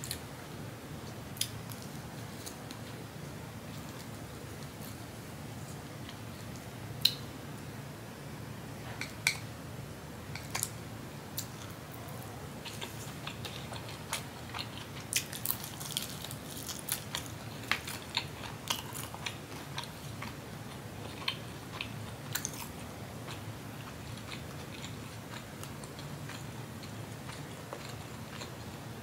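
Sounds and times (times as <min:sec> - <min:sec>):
steady low hum: 0:00.0 - 0:29.0
person chewing soft food: 0:11.4 - 0:28.8.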